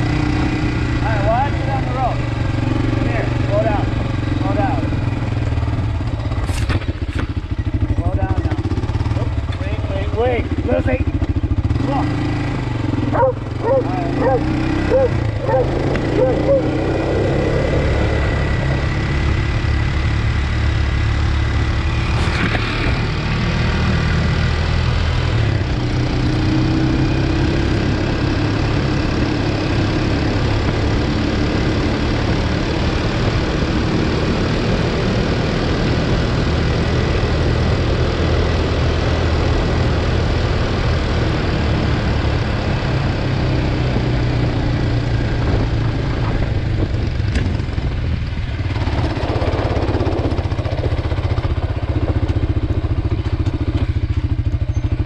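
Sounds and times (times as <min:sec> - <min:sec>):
quad engine running: 0:00.0 - 0:55.0.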